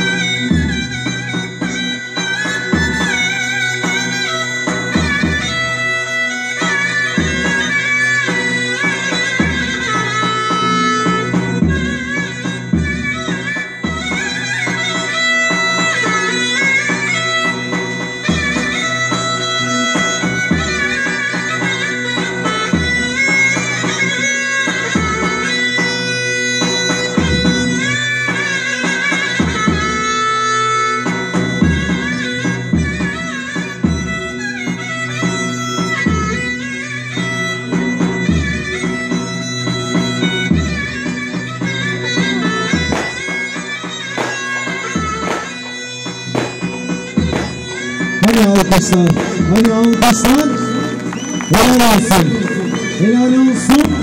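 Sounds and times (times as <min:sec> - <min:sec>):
reedy wind instrument melody: 0:00.0 - 0:54.0
deep drum beating: 0:46.3 - 0:47.7.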